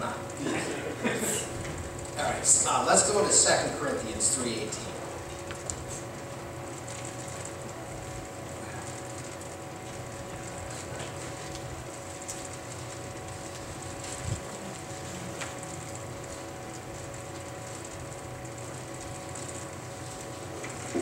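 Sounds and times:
room hum: 0:00.0 - 0:21.0.

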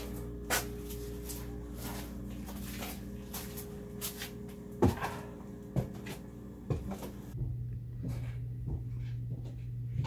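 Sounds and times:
heavy footsteps: 0:00.0 - 0:10.0
steady low hum: 0:00.0 - 0:10.0.

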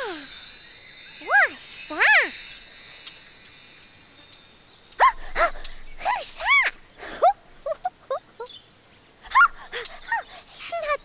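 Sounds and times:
twinkling magical chime shimmer: 0:00.0 - 0:07.0.

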